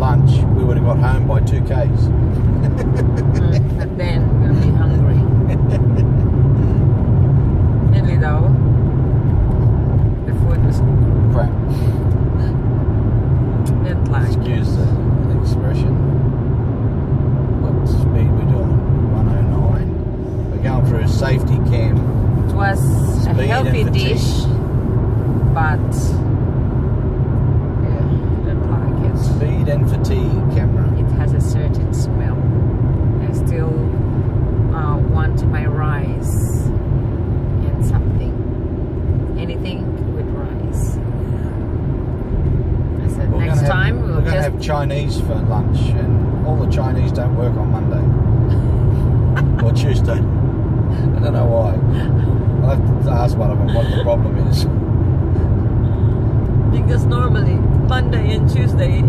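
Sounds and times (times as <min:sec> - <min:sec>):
people talking: 0:00.0 - 0:06.2, 0:07.9 - 0:08.6, 0:10.3 - 0:12.5, 0:13.7 - 0:16.0, 0:17.6 - 0:19.9, 0:20.6 - 0:24.6, 0:25.6 - 0:26.2, 0:27.8 - 0:32.4, 0:33.2 - 0:34.0, 0:34.7 - 0:36.7, 0:37.6 - 0:38.4, 0:39.4 - 0:41.5, 0:43.0 - 0:48.7, 0:49.4 - 0:50.3, 0:51.0 - 0:54.7, 0:56.7 - 0:59.0
car road and engine rumble: 0:00.0 - 0:59.0.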